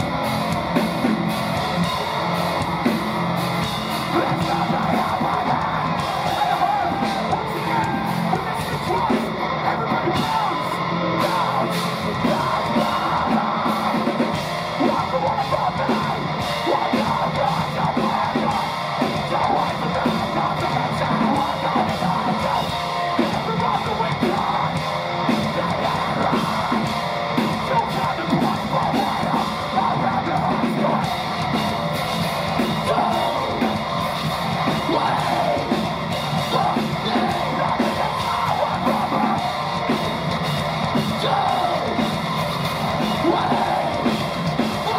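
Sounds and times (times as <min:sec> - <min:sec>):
bass guitar: 0:00.0 - 0:44.9
distorted electric guitars: 0:00.0 - 0:44.9
drum kit: 0:00.0 - 0:44.9
screamed vocals: 0:00.0 - 0:44.9.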